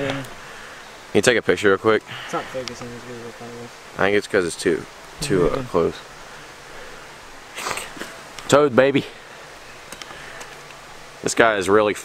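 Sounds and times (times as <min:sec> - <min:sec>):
outdoor background noise: 0:00.0 - 0:12.0
faint clicks: 0:09.9 - 0:10.8.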